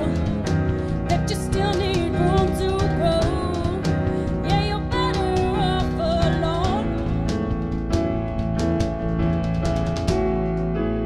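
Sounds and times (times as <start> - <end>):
drum hits: 0.0 - 10.6
bass guitar: 0.0 - 11.0
electric keyboard chords: 0.0 - 11.0.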